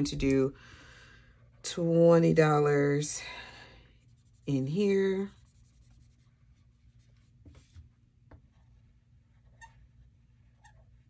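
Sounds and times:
marker scratching on paper: 0:04.0 - 0:07.8.

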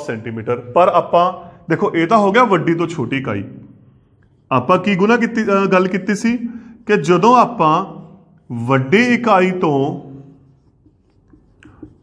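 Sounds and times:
marker writing on whiteboard: 0:01.8 - 0:06.2, 0:07.0 - 0:12.0.

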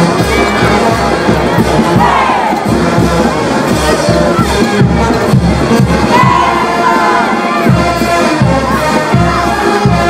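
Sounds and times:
crowd shouting and cheering: 0:00.0 - 0:10.0
festive dance music: 0:00.0 - 0:10.0.

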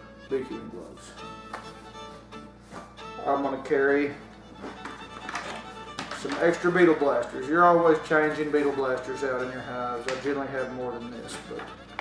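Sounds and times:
plastic traps clicking and rattling: 0:04.8 - 0:06.9.

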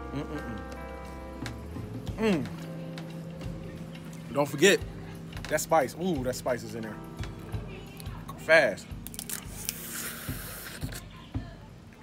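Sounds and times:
sucking and slurping at shell: 0:09.1 - 0:11.1.

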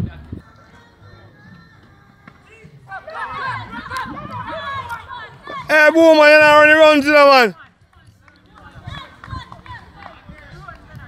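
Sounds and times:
distant people talking and calling: 0:00.2 - 0:11.0.

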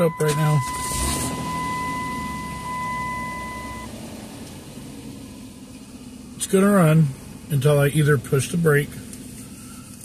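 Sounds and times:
car engine cranking and running: 0:00.0 - 0:10.0.

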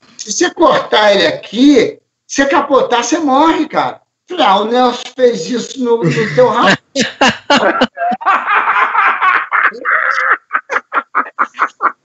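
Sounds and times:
laughing speech: 0:06.0 - 0:12.0
men laughing: 0:06.0 - 0:12.0.

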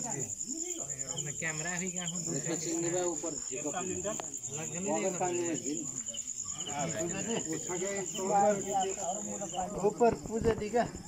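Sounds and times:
crickets trilling: 0:00.0 - 0:11.0
men talking: 0:00.0 - 0:11.0.

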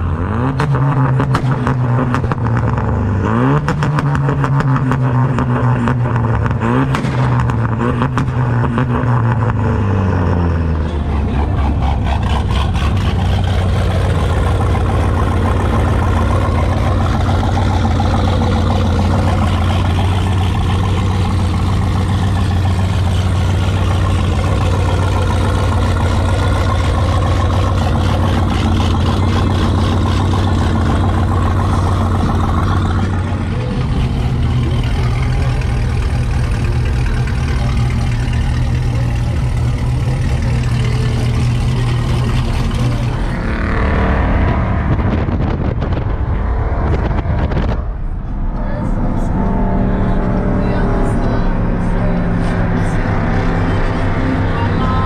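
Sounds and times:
car engines in traffic: 0:00.0 - 0:55.0
people's voices: 0:10.3 - 0:55.0.

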